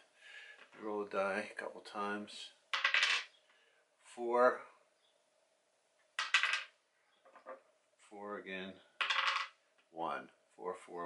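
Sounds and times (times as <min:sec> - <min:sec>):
die rolling and clattering: 0:02.8 - 0:03.3, 0:06.2 - 0:07.6, 0:09.0 - 0:09.6.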